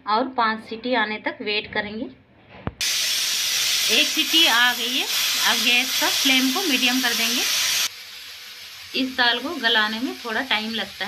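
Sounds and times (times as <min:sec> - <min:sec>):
pressure cooker steam hiss: 0:02.8 - 0:11.0.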